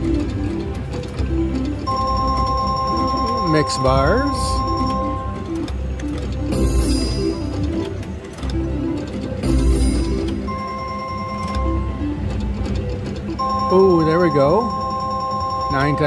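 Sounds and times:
slot machine electronic music: 0.0 - 16.0.

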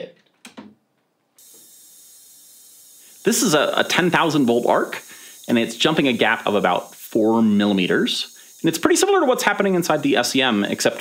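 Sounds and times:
electric arc hissing: 1.4 - 11.0.

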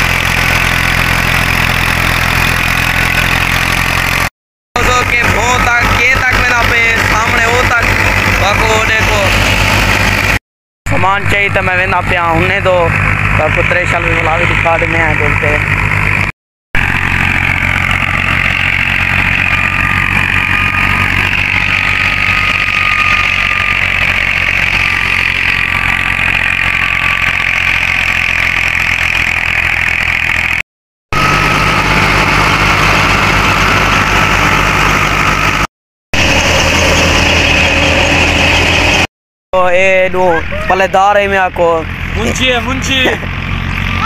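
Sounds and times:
thresher whining: 0.0 - 39.1
tractor engine drone: 0.0 - 44.0.

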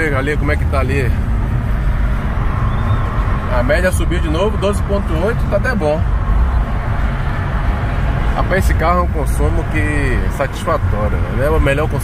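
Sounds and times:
car cabin road and engine rumble: 0.0 - 12.0.

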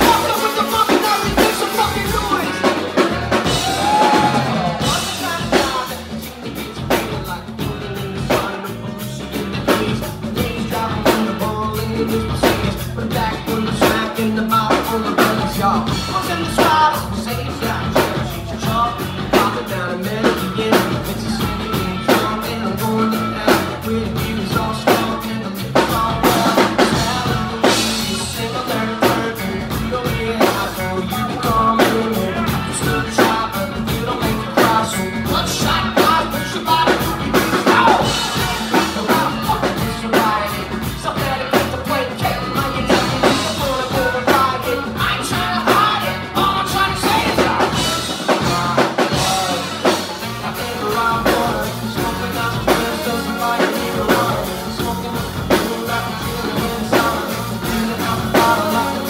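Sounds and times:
bass guitar: 0.0 - 59.0
drum kit steady beat: 0.0 - 59.0
electric guitar: 0.0 - 59.0.

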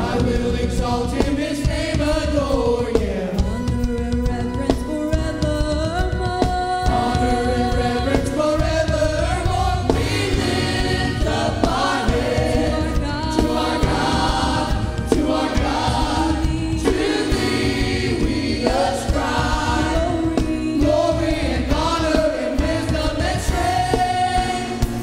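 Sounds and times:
bass guitar: 0.0 - 25.0
drum kit: 0.0 - 25.0
group singing worship song: 0.0 - 25.0.

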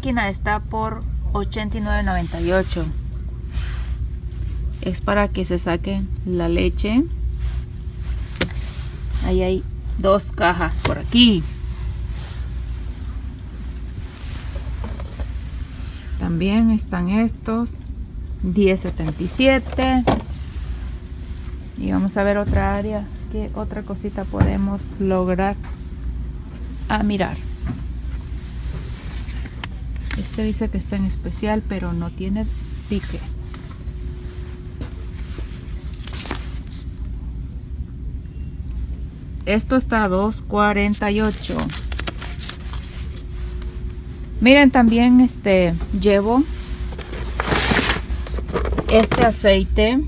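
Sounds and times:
store background rumble: 0.0 - 50.0
thin steady hum: 0.0 - 50.0
cardboard box handling rustles: 46.9 - 49.3.

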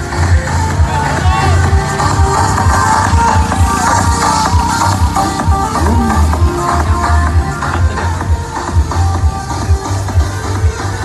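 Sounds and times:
electronic dance music: 0.0 - 11.0
heavy pulsing bass beat: 0.0 - 11.0.

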